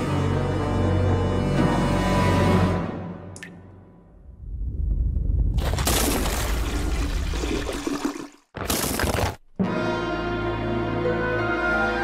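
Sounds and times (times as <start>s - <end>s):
water rushing down a drain: 5.5s - 8.6s.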